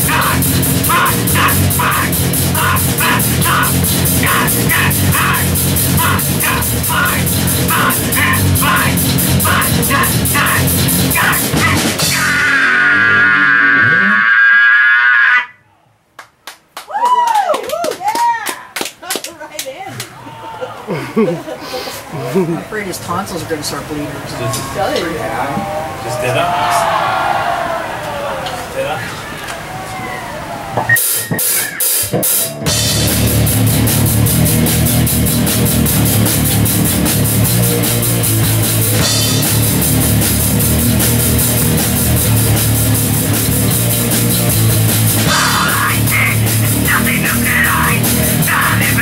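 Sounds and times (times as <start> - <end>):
heavy metal song: 0.0 - 14.7, 32.2 - 49.0
heavy metal band playing: 0.0 - 15.0, 30.9 - 49.0
vocalist screaming: 0.0 - 15.6, 25.5 - 28.6, 45.2 - 49.0
voices: 0.0 - 15.9, 17.8 - 32.1, 45.2 - 49.0.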